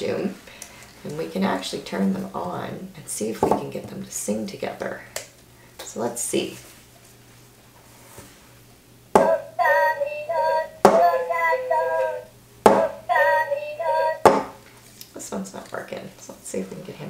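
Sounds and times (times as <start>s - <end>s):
toy figures singing through speakers: 9.2s - 14.3s.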